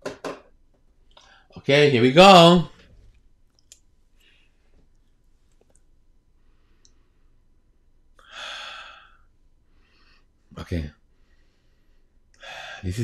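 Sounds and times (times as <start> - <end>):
soft clicks: 3.1 - 3.9
man breathing in: 8.2 - 10.4, 11.1 - 12.9.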